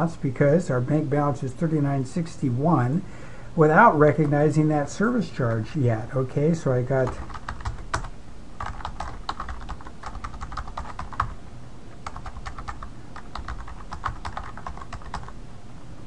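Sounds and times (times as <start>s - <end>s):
computer keyboard typing: 7.0s - 11.4s, 12.0s - 15.4s.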